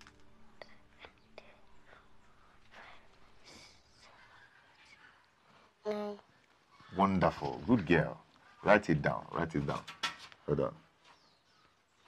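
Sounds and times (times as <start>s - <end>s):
faint whispering: 0.4s - 6.1s.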